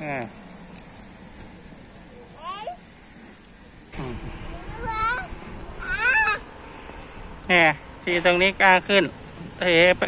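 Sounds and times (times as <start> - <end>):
toddler squealing: 4.8 - 6.4.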